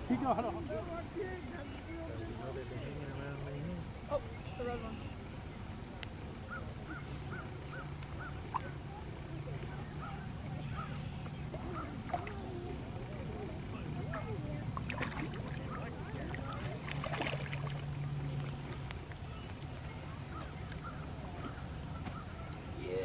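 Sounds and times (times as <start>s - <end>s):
fish thrashing and splashing water: 14.8s - 18.7s.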